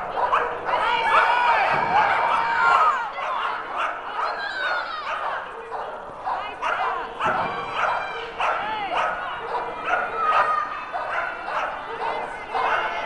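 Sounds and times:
dogs barking: 0.0s - 13.0s
people's voices: 0.0s - 13.0s.

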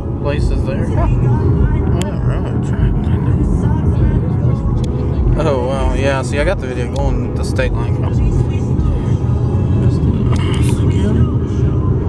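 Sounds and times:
road and wind noise inside car: 0.0s - 12.0s.

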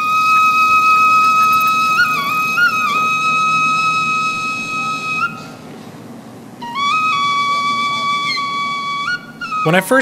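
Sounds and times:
flute holding a long note: 0.0s - 5.7s, 6.6s - 10.0s.

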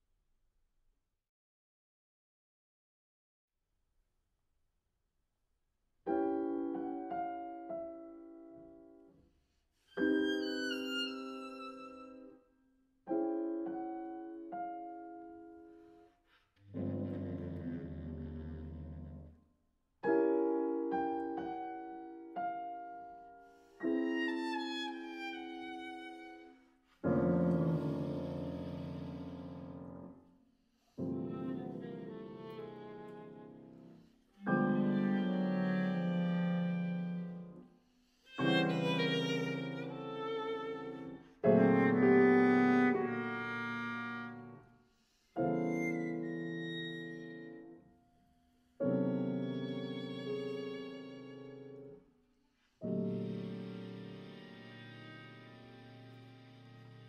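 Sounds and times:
violin: 9.8s - 12.5s, 23.8s - 30.0s, 31.0s - 37.6s, 38.3s - 44.6s, 45.3s - 47.8s, 48.9s - 52.0s, 52.8s - 57.0s
low bass clarinet note: 16.7s - 19.2s
bass clarinet: 16.7s - 19.3s, 27.1s - 30.2s, 31.1s - 33.5s, 34.5s - 37.4s, 38.4s - 40.2s, 41.5s - 44.7s, 53.1s - 57.0s
grand piano chords: 27.0s - 30.2s.

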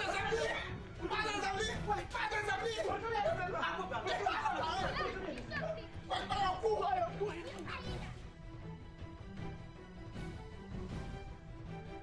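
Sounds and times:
people talking and shouting: 0.0s - 8.4s.

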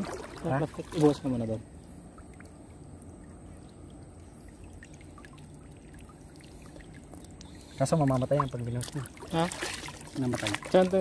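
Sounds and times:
shallow river water trickling: 0.0s - 11.0s
drips and splashes from hands: 2.2s - 11.0s.

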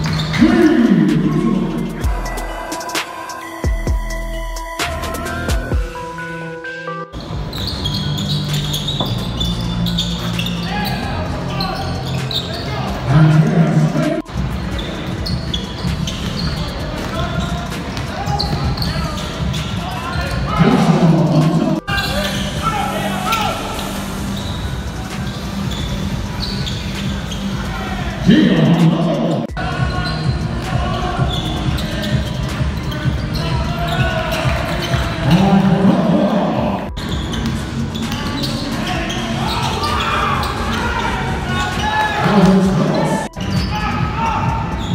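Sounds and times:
voices: 0.0s - 3.8s, 7.6s - 44.9s
sneakers squeaking: 0.0s - 4.1s, 7.1s - 44.9s
hip-hop instrumental beat: 0.0s - 44.9s.

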